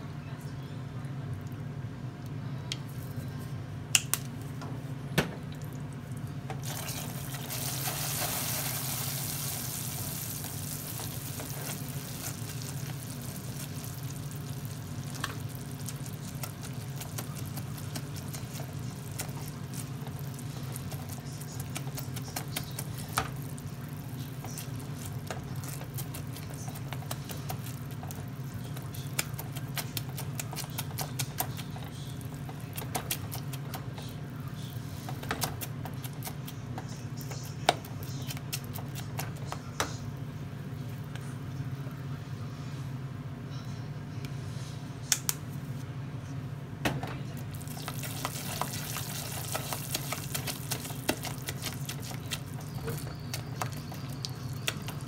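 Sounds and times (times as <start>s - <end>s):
steady low hum: 0.0s - 55.0s
sugar syrup bubbling and hissing: 5.6s - 39.4s, 47.5s - 55.0s.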